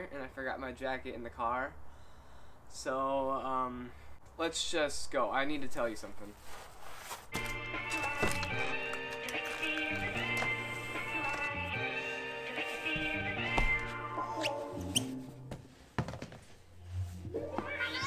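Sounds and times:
background music: 7.4s - 15.8s.

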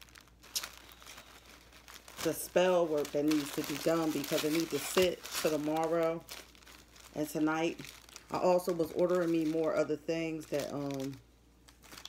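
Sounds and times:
rustling and crinkling: 0.0s - 12.0s.

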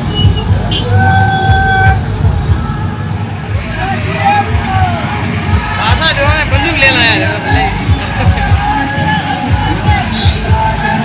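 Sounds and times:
motorcycle engines running: 0.0s - 11.0s
voices: 0.2s - 11.0s.

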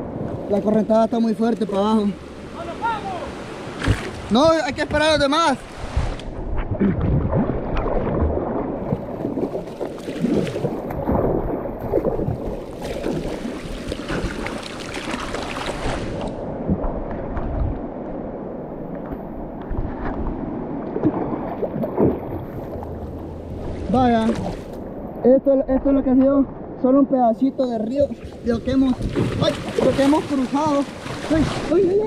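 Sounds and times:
river water rushing and splashing: 0.0s - 32.0s
water gurgling: 3.8s - 32.0s.

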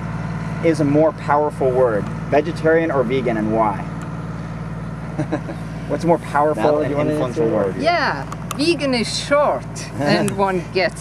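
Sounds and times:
low background hum: 0.0s - 11.0s
person laughing: 5.1s - 5.7s.

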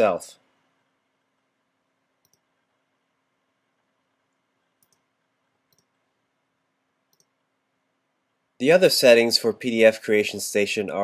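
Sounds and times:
computer mouse clicks: 2.2s - 2.5s, 4.8s - 5.1s, 5.7s - 6.0s, 7.1s - 7.4s.

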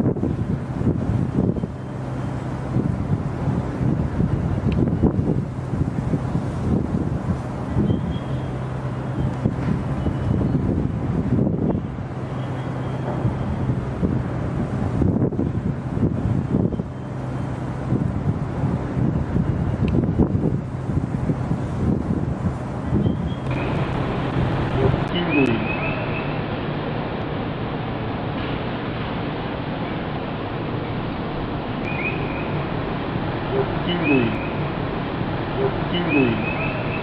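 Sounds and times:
wind buffeting microphone: 0.0s - 33.8s
steady low hum: 0.0s - 37.0s.

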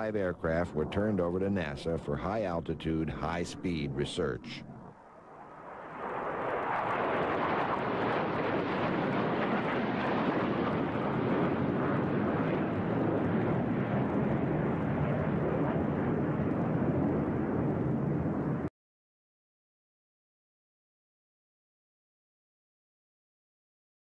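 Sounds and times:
jet engine rushing: 0.0s - 18.7s.

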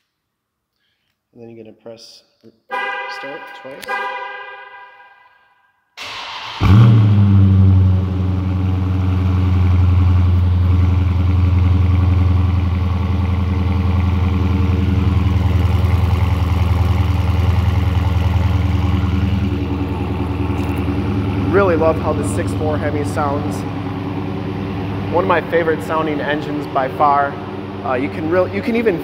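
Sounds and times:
car engine cranking and revving: 6.0s - 29.0s
deep engine idle: 6.7s - 29.0s.

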